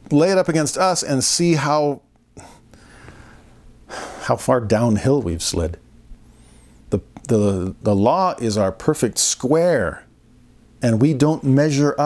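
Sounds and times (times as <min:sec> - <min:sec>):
man breathing in: 0:02.4 - 0:04.3, 0:06.2 - 0:06.9.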